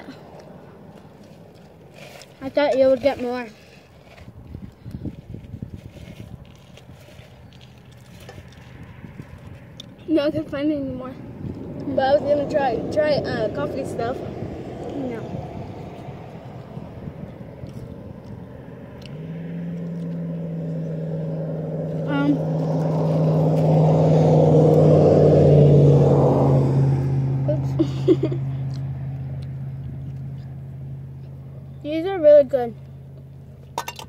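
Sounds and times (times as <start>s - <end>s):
vehicle driving past: 7.0s - 32.0s.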